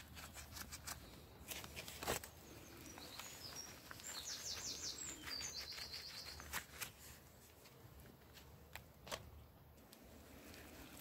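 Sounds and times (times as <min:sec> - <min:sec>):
songbird chirping and trilling: 0:02.3 - 0:06.7.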